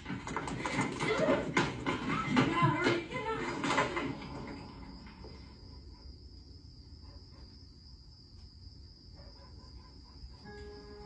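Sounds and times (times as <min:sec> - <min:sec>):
crickets trilling: 0:03.2 - 0:11.0.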